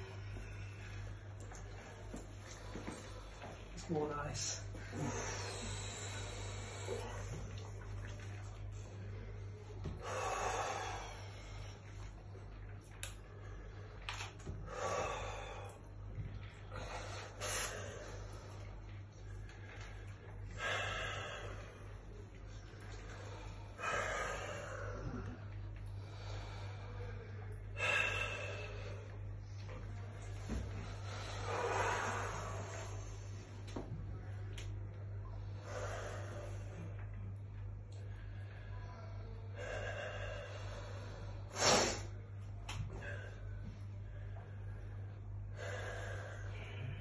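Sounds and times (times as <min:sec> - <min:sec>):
man breathing hard: 0:00.0 - 0:07.6, 0:09.8 - 0:12.0, 0:13.6 - 0:18.7, 0:19.4 - 0:22.2, 0:22.9 - 0:34.8, 0:42.8 - 0:47.0
steady low hum: 0:00.0 - 0:47.0
man breathing in deeply: 0:04.7 - 0:07.6, 0:22.9 - 0:34.4.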